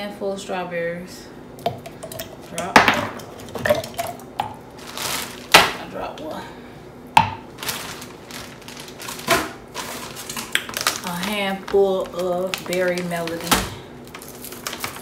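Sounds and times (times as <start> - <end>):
kitchen containers rustling: 1.8 - 5.9, 7.2 - 15.0.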